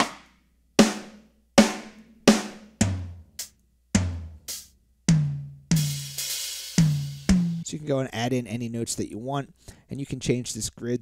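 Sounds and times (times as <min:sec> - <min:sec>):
sampled drum hits: 0:00.0 - 0:07.7.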